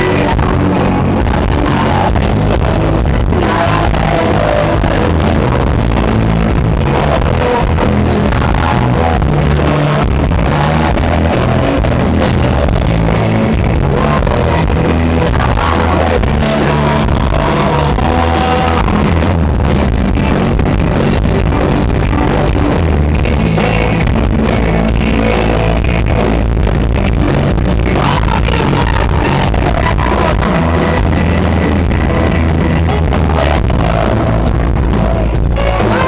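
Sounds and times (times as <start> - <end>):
man and woman singing: 0.0 - 6.1, 6.8 - 19.3, 27.8 - 31.3, 32.8 - 36.0
live pop-rock band playing: 0.0 - 36.0.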